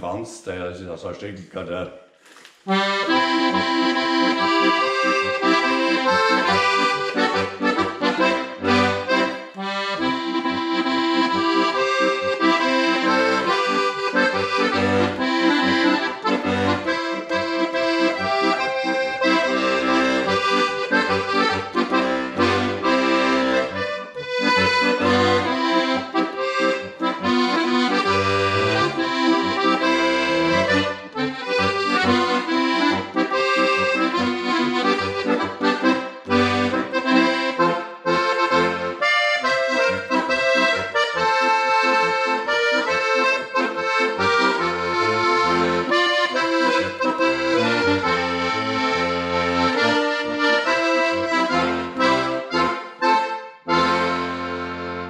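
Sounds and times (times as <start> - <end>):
button accordion folk tune: 2.2 - 55.0.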